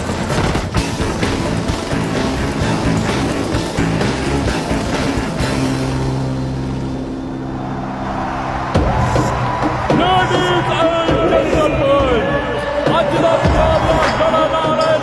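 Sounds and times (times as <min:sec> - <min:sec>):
film music: 0:00.0 - 0:15.0.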